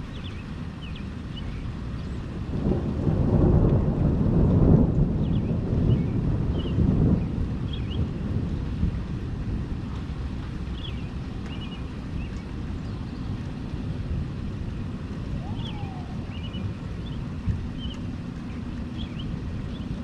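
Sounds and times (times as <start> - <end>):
rain hissing: 0.0 - 20.0
rolling thunder: 2.3 - 20.0.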